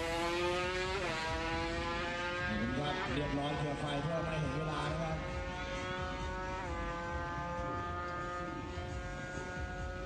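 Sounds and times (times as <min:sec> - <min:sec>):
motorcycle engines at full throttle: 0:00.0 - 0:10.0.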